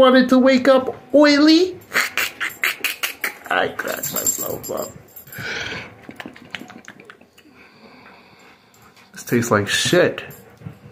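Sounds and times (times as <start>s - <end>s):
raccoon hissing: 1.9s - 3.5s.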